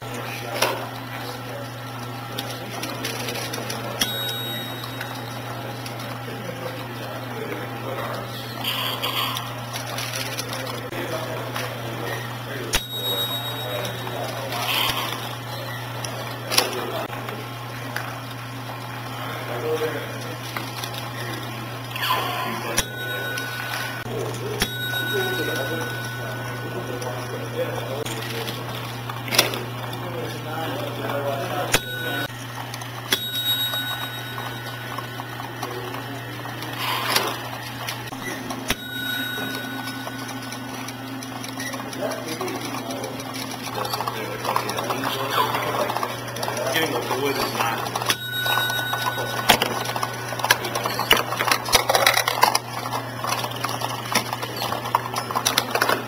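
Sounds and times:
machines humming: 0.0 - 56.0
clicks and knocks of moving parts: 49.2 - 56.0.

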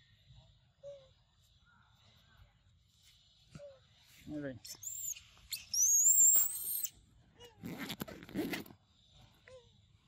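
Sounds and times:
high whistle-like animal call: 4.8 - 6.9.

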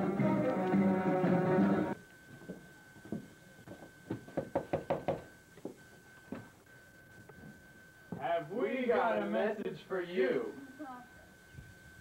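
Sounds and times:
faint steady high tone: 0.0 - 12.0
knuckles knocking on wooden door: 4.3 - 5.3.

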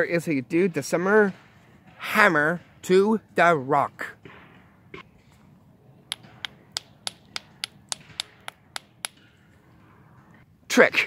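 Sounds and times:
hammer tapping on rock: 6.1 - 9.2.

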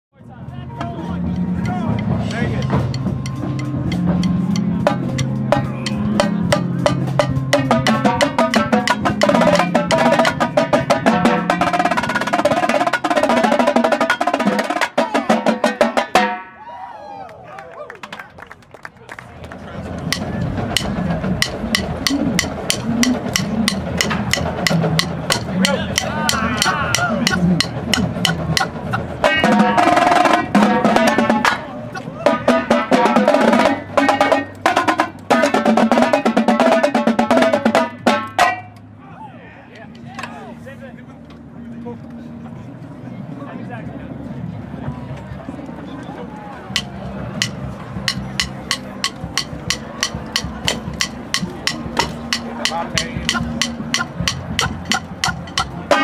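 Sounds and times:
marching tenor drums: 0.9 - 16.4, 20.0 - 38.7, 46.8 - 56.0.

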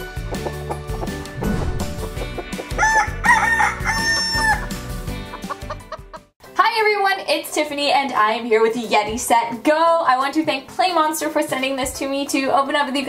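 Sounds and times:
short intro jingle: 1.4 - 2.3
rooster crow: 2.7 - 4.8
cartoon chicken clucking: 5.3 - 6.2.

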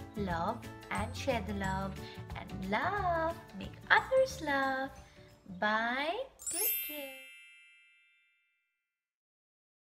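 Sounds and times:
bell-like chime: 6.4 - 8.8.

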